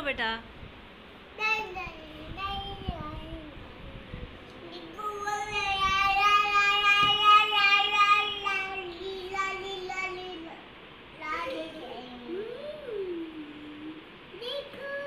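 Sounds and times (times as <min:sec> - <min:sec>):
child singing wordlessly: 0:01.4 - 0:15.0.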